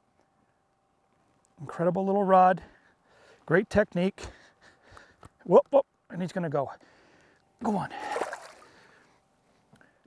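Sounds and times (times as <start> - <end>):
fish splashing in water: 7.9 - 8.8.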